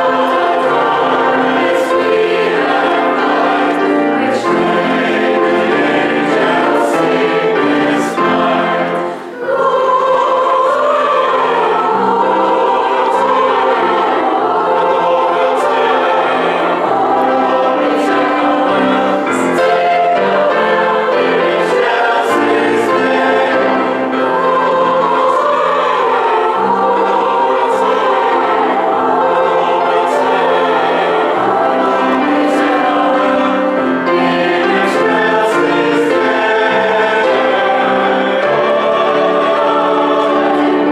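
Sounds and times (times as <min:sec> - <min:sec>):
mixed choir singing: 0:00.0 - 0:40.9.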